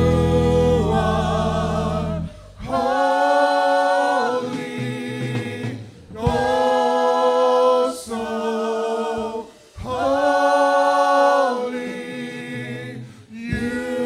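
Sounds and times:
instrumental backing: 0.0s - 3.4s
group singing worship: 0.0s - 14.0s.

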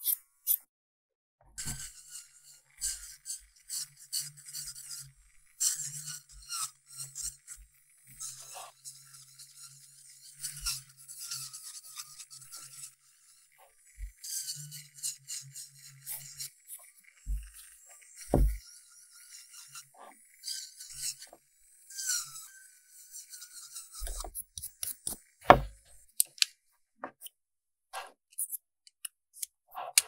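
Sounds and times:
nail drill bit scratching: 0.0s - 0.6s, 1.6s - 13.0s, 16.0s - 18.6s, 20.5s - 26.5s, 28.3s - 30.0s
low motor hum: 17.3s - 17.6s, 18.3s - 18.6s.

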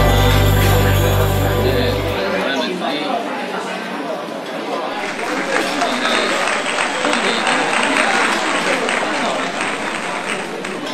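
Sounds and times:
many voices chattering: 0.0s - 10.9s.

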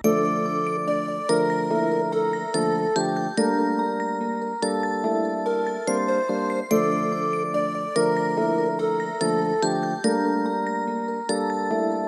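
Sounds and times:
layered synth melody loop: 0.0s - 12.0s.

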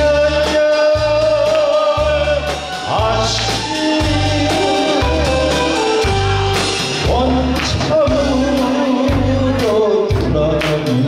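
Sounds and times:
band accompaniment: 0.0s - 11.0s
bass line: 0.0s - 11.0s
man singing: 0.0s - 11.0s.

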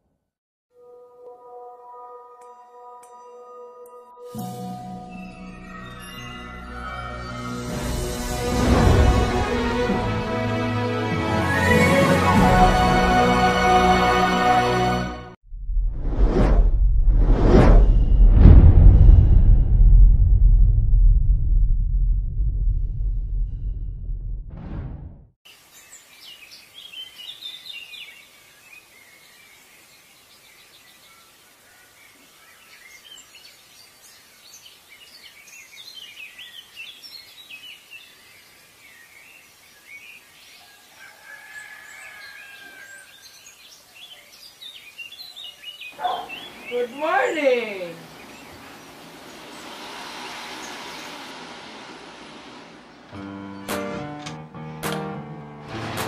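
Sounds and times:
cinematic whooshes: 15.5s - 25.3s, 48.0s - 53.2s
low rumbling drone: 15.5s - 25.3s, 48.1s - 53.6s
birds chirping: 25.6s - 51.9s.

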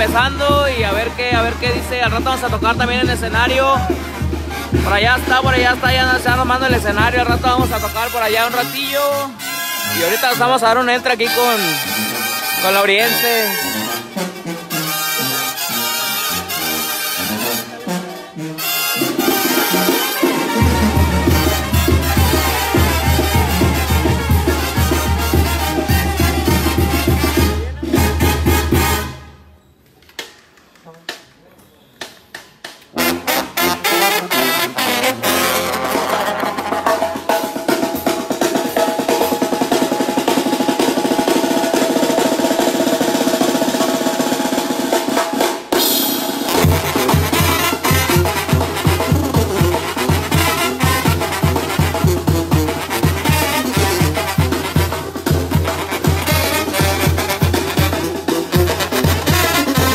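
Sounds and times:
brass band music: 0.0s - 29.6s, 32.9s - 59.9s
sustained brass chords: 7.3s - 29.4s, 32.9s - 37.0s, 46.5s - 59.9s
drum hits: 19.1s - 29.2s, 35.5s - 59.9s
pulsing sousaphone bass: 20.6s - 28.9s.

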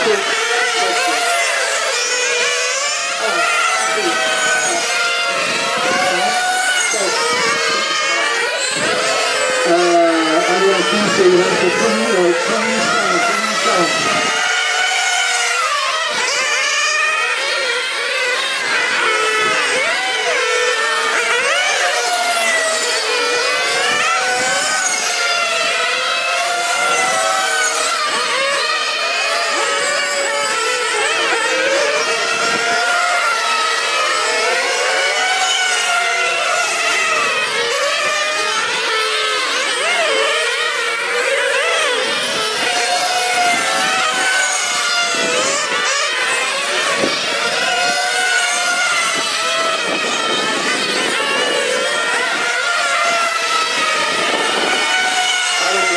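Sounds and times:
rc car engines whining: 0.0s - 55.9s.

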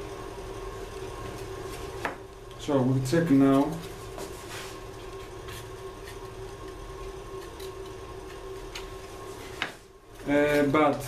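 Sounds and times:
workshop hum: 0.0s - 11.0s.

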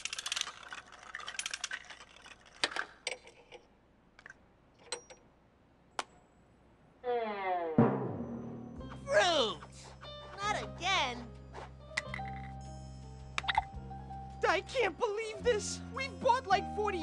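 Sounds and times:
plastic capsules clattering: 0.0s - 3.6s
downward sliding tone: 7.0s - 9.3s
sharp hit: 7.8s - 9.6s.

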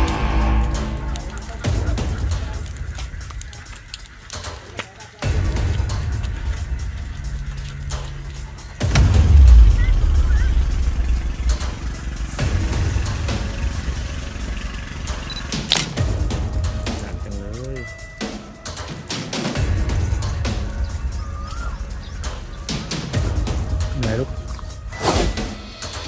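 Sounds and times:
large fire crackling: 0.0s - 26.0s.

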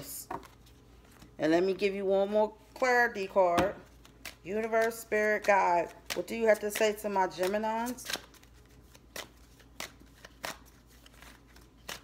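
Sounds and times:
cards being shuffled by hand: 3.9s - 12.0s.

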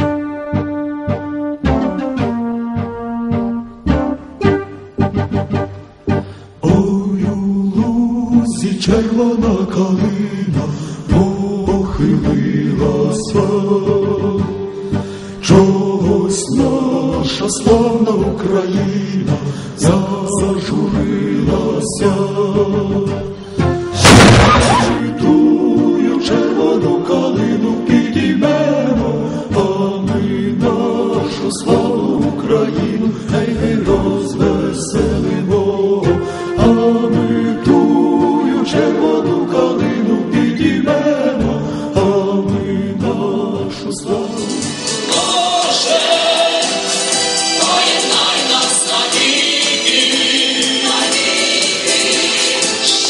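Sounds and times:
choir singing: 6.6s - 14.7s, 15.4s - 23.2s, 23.9s - 53.0s.

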